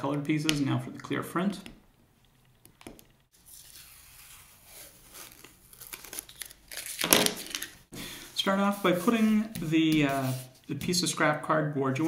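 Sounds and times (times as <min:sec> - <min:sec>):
paper masking peeling off: 0:03.4 - 0:07.8.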